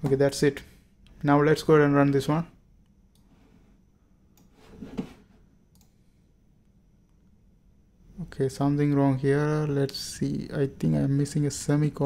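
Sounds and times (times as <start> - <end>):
computer mouse clicking: 5.7 - 6.0.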